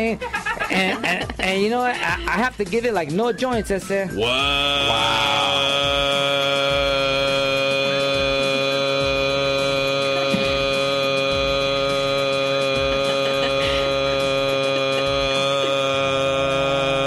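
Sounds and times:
sustained musical drone: 0:04.2 - 0:17.0.

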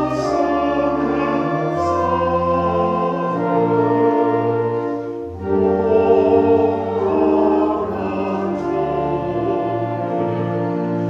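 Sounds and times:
church organ playing a hymn: 0:00.0 - 0:11.0.

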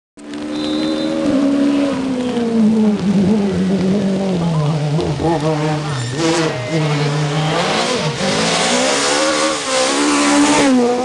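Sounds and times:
rally car engine approaching: 0:00.2 - 0:11.0.

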